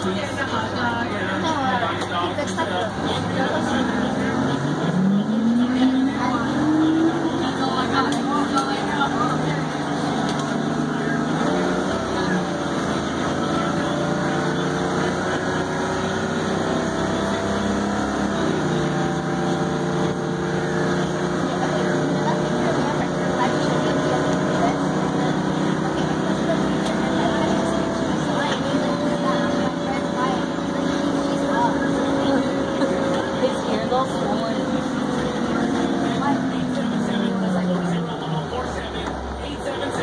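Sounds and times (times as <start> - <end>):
bus engine from inside cabin: 0.0 - 40.0.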